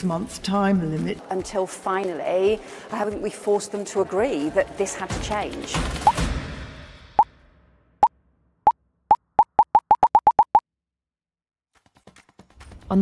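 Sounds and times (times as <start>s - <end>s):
pop-up sound effect blips: 9.1s - 10.6s.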